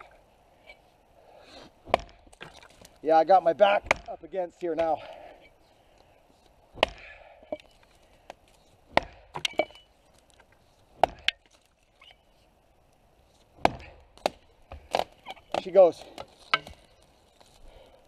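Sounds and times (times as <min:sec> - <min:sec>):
axe chopping wood: 0:01.8 - 0:02.5, 0:03.6 - 0:05.0, 0:06.7 - 0:07.7, 0:08.9 - 0:09.8, 0:11.0 - 0:11.4, 0:13.6 - 0:16.9.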